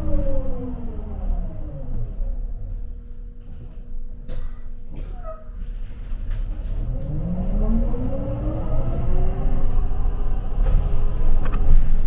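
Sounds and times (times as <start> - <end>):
bus accelerating: 0.0 - 12.0
low engine rumble: 0.0 - 12.0.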